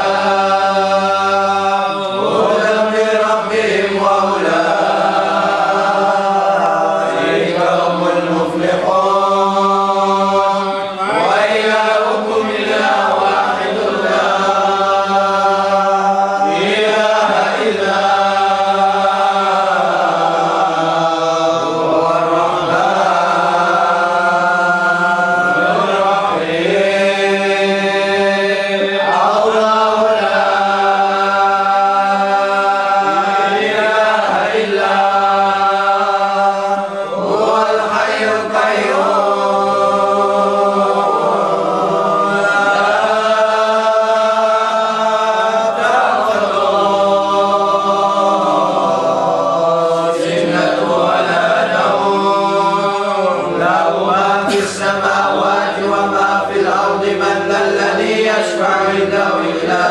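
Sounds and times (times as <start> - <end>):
men chanting in unison: 0.0 - 59.9.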